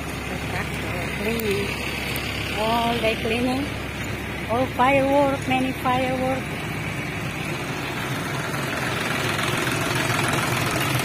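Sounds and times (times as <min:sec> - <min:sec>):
road and wind noise: 0:00.0 - 0:11.0
scooter engine running: 0:00.0 - 0:11.0.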